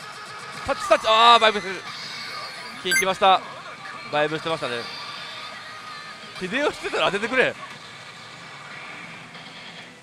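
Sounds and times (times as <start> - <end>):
faint high machine tone: 2.9 - 3.1.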